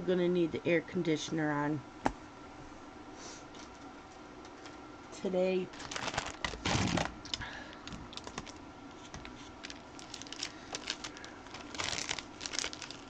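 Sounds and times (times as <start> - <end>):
plastic sleeve crinkling: 5.7 - 13.0.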